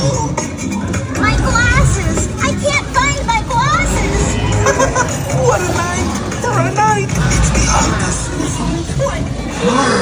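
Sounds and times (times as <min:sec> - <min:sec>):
ride car rumbling: 0:00.0 - 0:10.0
soundtrack music: 0:00.0 - 0:10.0.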